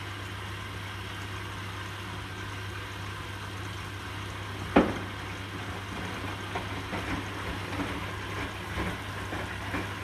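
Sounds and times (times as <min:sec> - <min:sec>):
splashes and knocks of tumbling load: 0:04.6 - 0:10.0
washing machine drum turning: 0:04.7 - 0:10.0.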